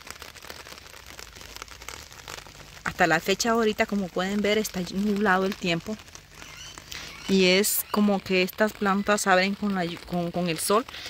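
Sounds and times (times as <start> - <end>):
faint crackling rustle: 0.0 - 11.0.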